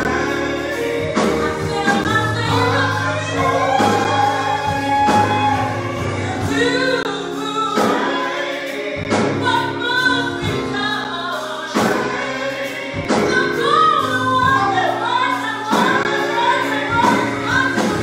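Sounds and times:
group of singers: 0.0s - 18.0s
keyboard accompaniment: 0.0s - 18.0s.

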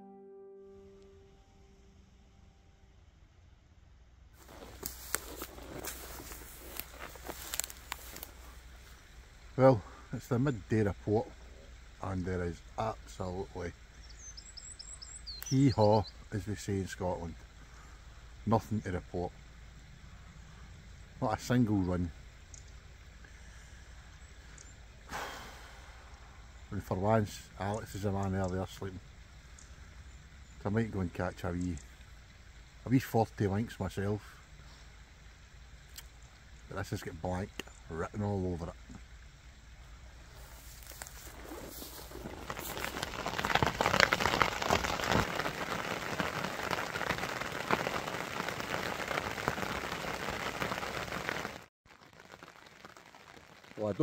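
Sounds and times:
heavy rain on fabric shelter: 4.4s - 22.2s, 22.9s - 39.1s, 40.0s - 54.0s.

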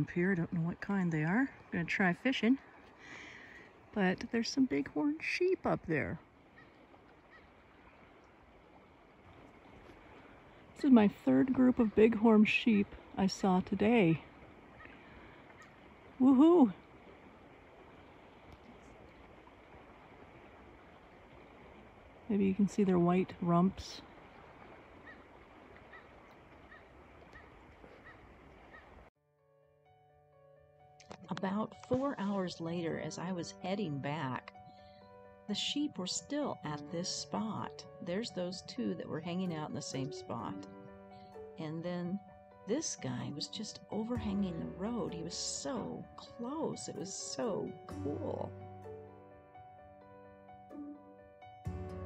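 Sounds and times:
soft background music: 0.0s - 25.2s, 29.4s - 52.0s
faint outdoor hiss: 0.0s - 27.9s.

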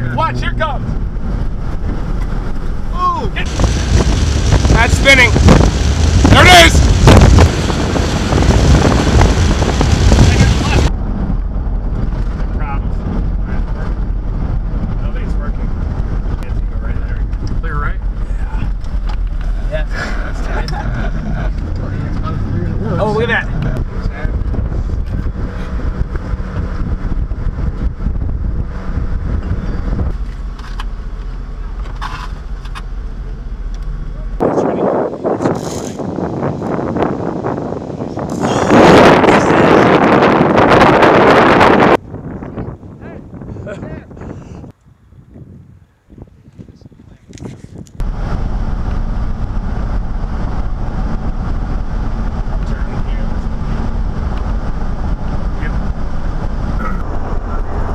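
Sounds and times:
storm winds blowing: 0.0s - 31.8s, 33.0s - 57.9s
low vehicle rumble: 0.0s - 57.9s
strong wind on microphone: 0.8s - 18.8s, 20.2s - 30.2s, 34.4s - 57.9s.

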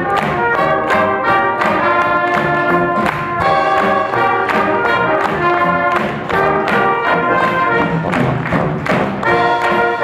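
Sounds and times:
brass band playing: 0.0s - 10.0s
steady drum beat: 0.0s - 10.0s.

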